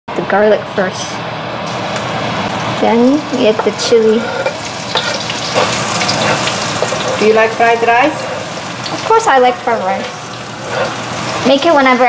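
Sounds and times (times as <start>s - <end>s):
chili sizzling in hot oil: 1.5s - 12.0s.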